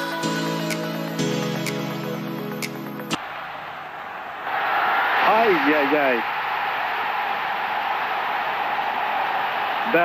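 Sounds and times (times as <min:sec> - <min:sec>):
stadium crowd noise: 0:03.2 - 0:10.0.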